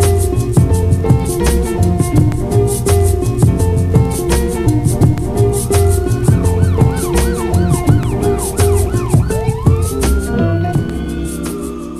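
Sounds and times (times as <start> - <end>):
instrumental music with drum beat: 0.0 - 11.9
high wavering swooping tone: 4.8 - 11.9.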